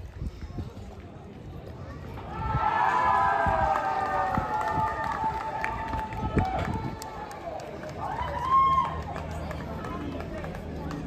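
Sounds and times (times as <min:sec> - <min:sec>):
people talking: 0:03.4 - 0:11.0.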